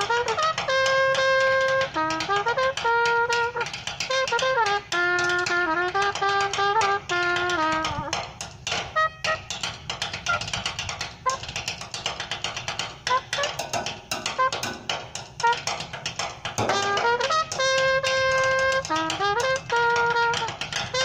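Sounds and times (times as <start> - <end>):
sticks drumming on steel drum: 0.0 - 21.0
trumpet playing tune: 0.0 - 21.0.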